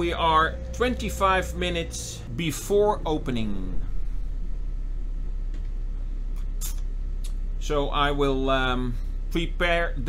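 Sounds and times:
boat engines droning: 0:00.0 - 0:10.0.

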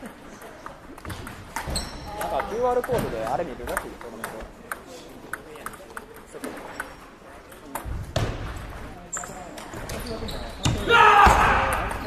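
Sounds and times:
table tennis balls clicking: 0:00.0 - 0:10.0.

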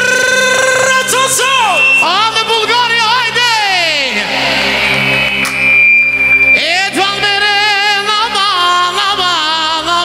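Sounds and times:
man singing into a microphone: 0:00.0 - 0:01.4, 0:06.6 - 0:10.0.

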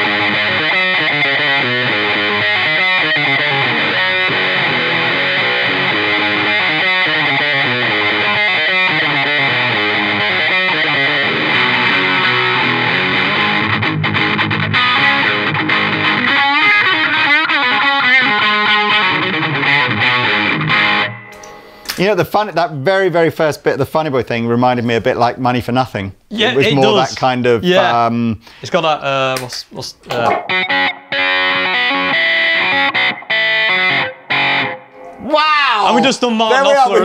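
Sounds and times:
distorted electric guitar with wah sweeps: 0:00.0 - 0:21.9, 0:30.2 - 0:36.0.

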